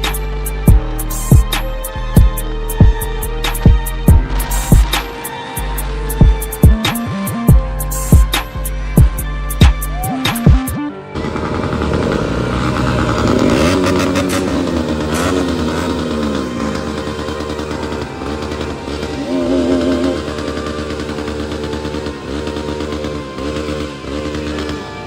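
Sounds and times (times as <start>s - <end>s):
motorcycle engines revving: 3.2s - 7.6s, 10.5s - 25.0s.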